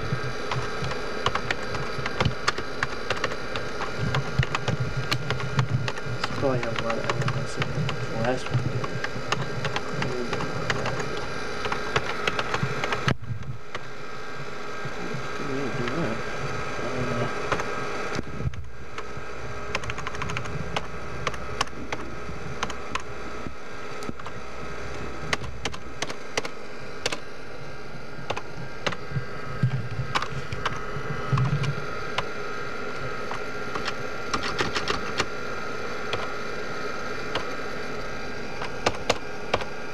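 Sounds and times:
keyboard typing: 0.0 - 13.8, 17.0 - 27.3, 28.2 - 35.4, 36.0 - 36.4, 37.2 - 39.8
steady hum: 0.0 - 39.9.

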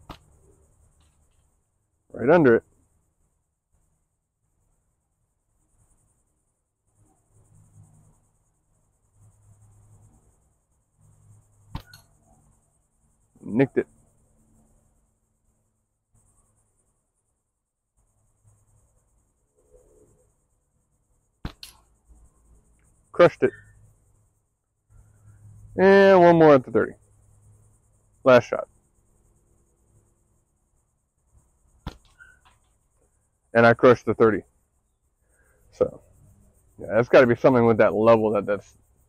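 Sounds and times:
insects chirring: 0.0 - 39.0
steel ball striking target: 11.7 - 12.0, 21.4 - 21.9, 31.8 - 32.4
sharp click: 11.7 - 12.2, 21.4 - 21.9
slingshot bands snapping: 11.7 - 12.2, 21.4 - 21.9.

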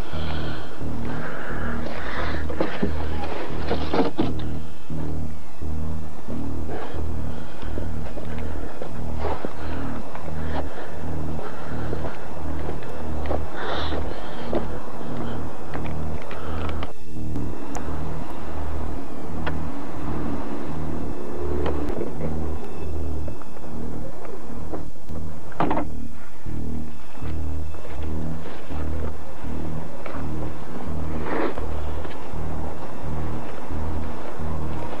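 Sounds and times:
crackling noise: 0.0 - 35.0
throbbing bass pulse: 0.0 - 35.0.

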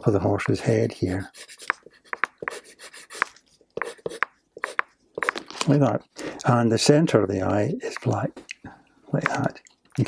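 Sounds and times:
pencil scratching on paper: 1.2 - 5.4.

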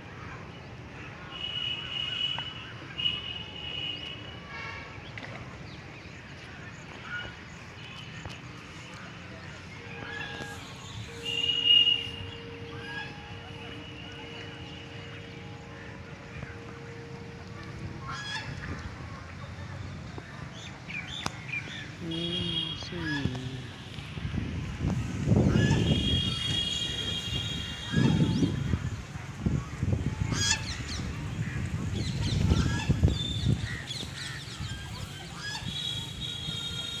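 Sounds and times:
goose honking: 9.8 - 19.3, 30.3 - 30.8, 33.7 - 36.9
wind rumble on microphone: 22.9 - 36.5.

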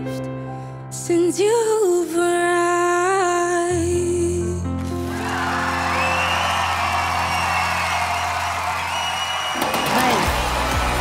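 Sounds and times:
audience cheering and whooping: 5.0 - 11.0.

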